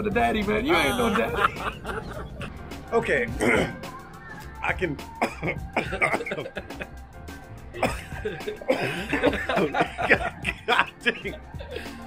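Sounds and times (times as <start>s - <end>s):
man coughing and clearing throat: 3.3s - 3.8s, 5.2s - 6.9s, 7.8s - 12.0s.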